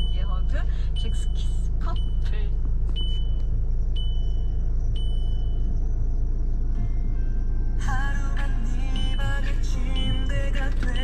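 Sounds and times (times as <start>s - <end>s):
car engine idling: 0.0s - 11.0s
car warning beep: 0.0s - 11.0s.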